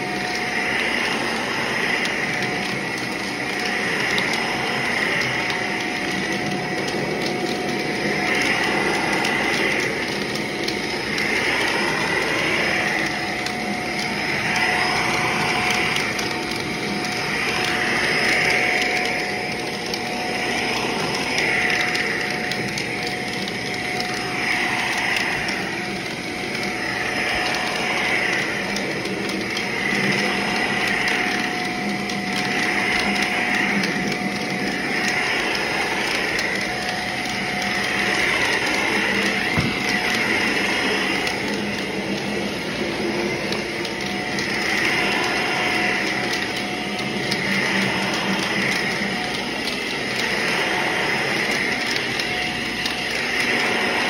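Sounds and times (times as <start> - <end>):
vacuum cleaner on carpet: 0.0 - 54.0.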